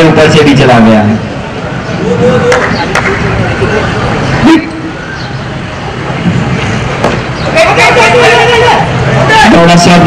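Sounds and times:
outdoor background noise: 0.0 - 10.0
voices: 0.0 - 10.0.

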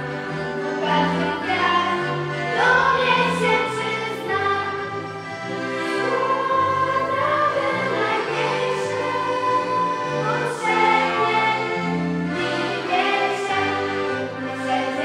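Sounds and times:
accordions playing chords: 0.0 - 15.0
children's choir singing: 0.0 - 15.0.

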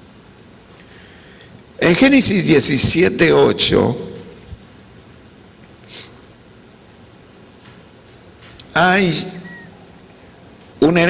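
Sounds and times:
low room noise through microphone: 0.0 - 11.0
breath at microphone: 0.8 - 1.6, 5.9 - 6.2.

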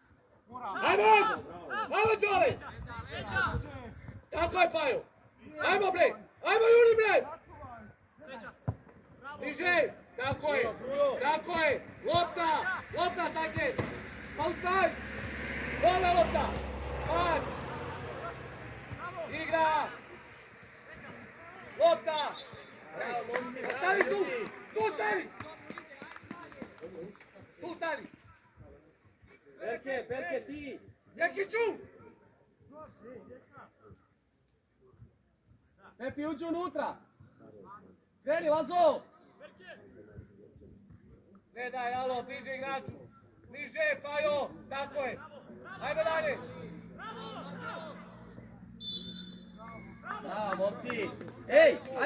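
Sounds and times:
men shouting: 0.7 - 2.4, 10.6 - 20.0, 45.6 - 48.3.

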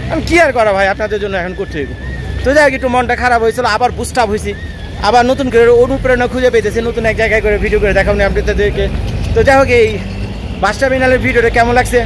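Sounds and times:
man talking: 0.0 - 12.0
road traffic rumble: 0.0 - 12.0.

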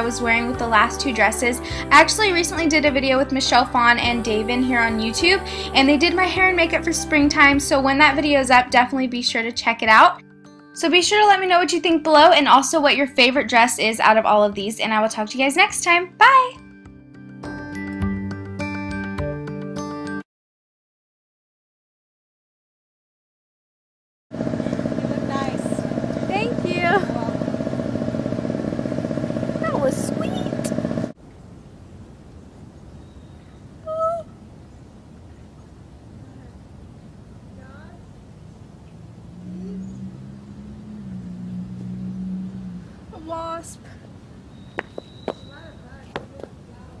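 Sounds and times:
loud engine-like hum: 0.0 - 8.8, 24.3 - 31.2, 37.5 - 44.2
short voices: 39.5 - 40.2
footsteps on concrete: 44.8 - 46.6.

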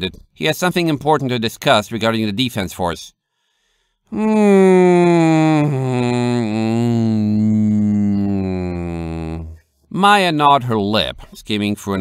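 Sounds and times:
man humming: 4.1 - 9.7.

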